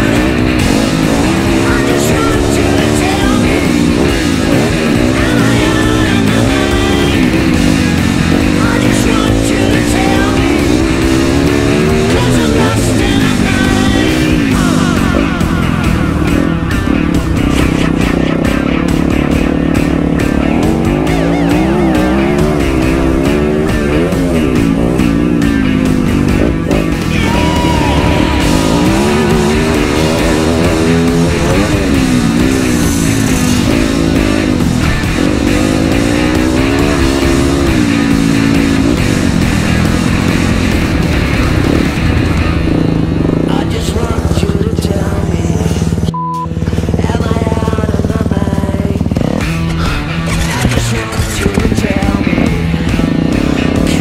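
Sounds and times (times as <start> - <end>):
dirt bike engine revving: 0.0 - 54.0
music playing: 0.0 - 54.0.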